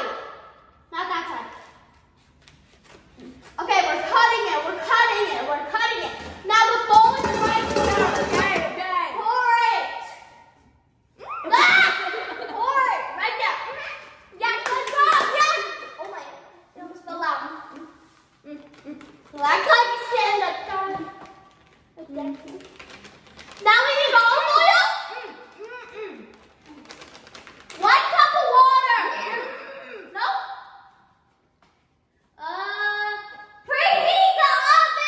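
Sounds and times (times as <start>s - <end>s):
children talking loudly: 3.6s - 10.2s, 23.6s - 25.6s, 27.8s - 30.5s, 32.4s - 35.0s.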